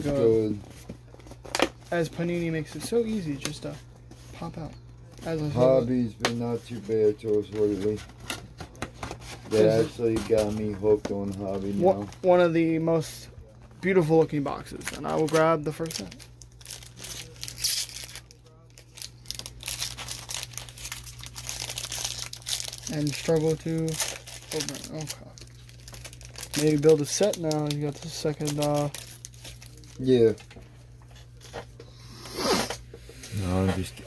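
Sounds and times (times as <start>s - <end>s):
foil wrapper crinkling and tearing: 9.5s - 13.2s, 13.8s - 30.5s.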